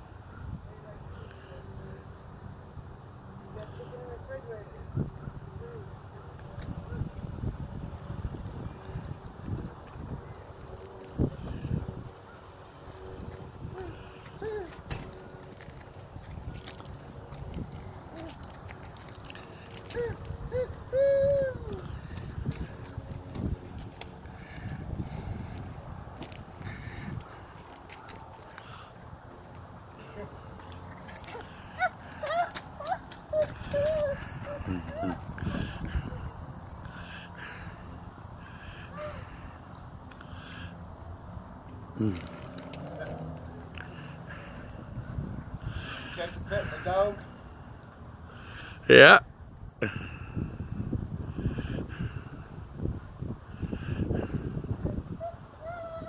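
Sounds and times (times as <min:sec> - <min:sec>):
toddler vocal sounds: 0:13.7 - 0:14.8, 0:19.8 - 0:22.2, 0:31.3 - 0:36.3
footsteps crunching on gravel: 0:14.2 - 0:20.5, 0:22.1 - 0:28.7.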